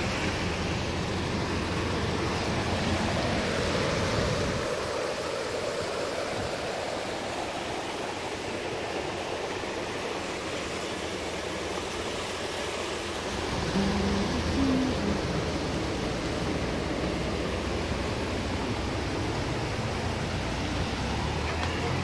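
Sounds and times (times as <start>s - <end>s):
rain: 0.0s - 22.0s.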